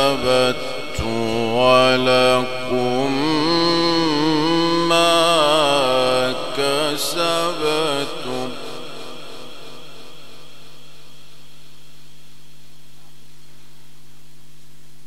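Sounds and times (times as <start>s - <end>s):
man reciting melodically: 0.0s - 10.0s
electrical hum and hiss: 0.0s - 15.0s.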